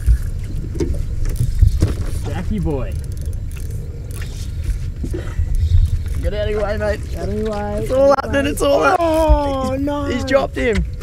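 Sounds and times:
faint water noise: 0.0s - 11.0s
wind buffeting microphone: 0.0s - 11.0s.

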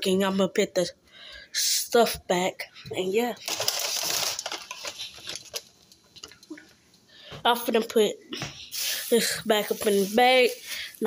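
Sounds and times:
food packaging rustling: 3.3s - 6.6s, 8.8s - 11.0s.

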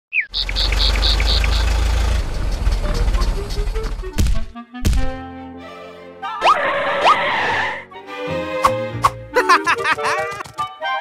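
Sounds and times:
low engine rumble: 0.4s - 4.2s.

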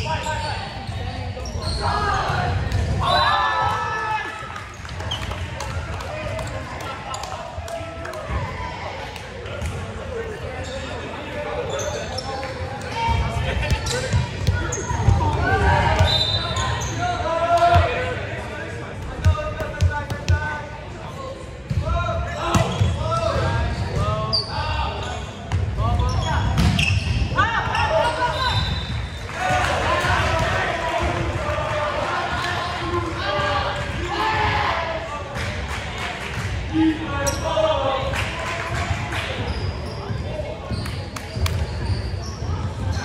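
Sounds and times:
people shouting and chattering: 0.0s - 43.0s.

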